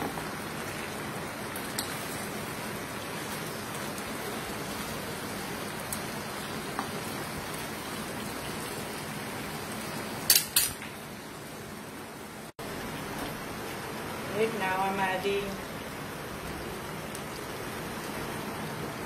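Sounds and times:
food sizzling in a pan: 0.0 - 19.0.

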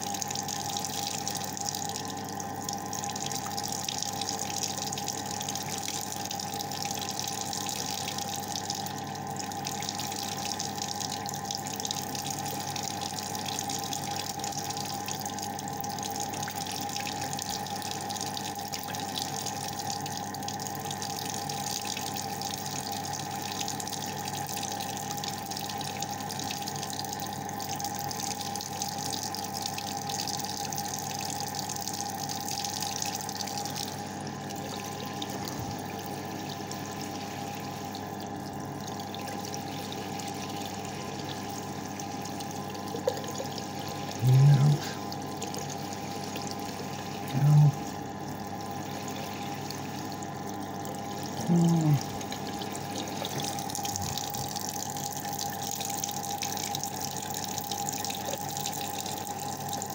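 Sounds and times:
tap water running into sink: 40.5 - 46.8, 52.1 - 59.9.

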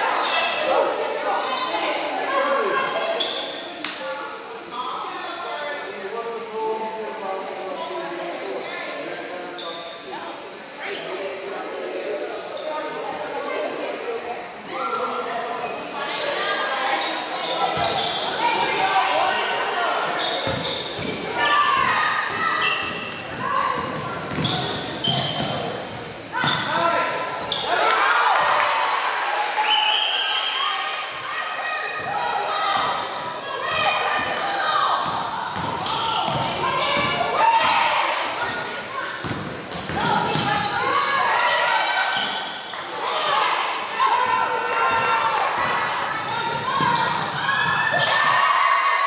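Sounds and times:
voices calling out echoing: 0.0 - 49.0
basketball bouncing on wooden floor: 23.9 - 24.6.

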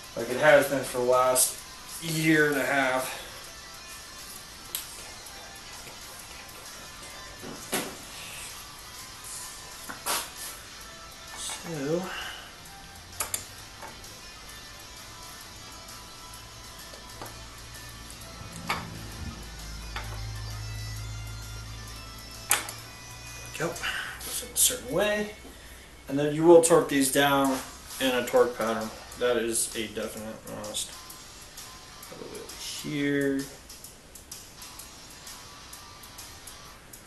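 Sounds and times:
faint background music: 0.0 - 37.0
low hum: 12.2 - 23.5.

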